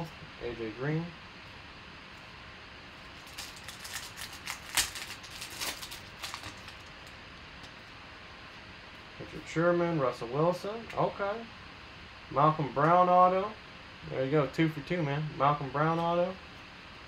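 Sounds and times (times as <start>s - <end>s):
plastic wrapper tearing and crinkling: 3.1s - 7.2s.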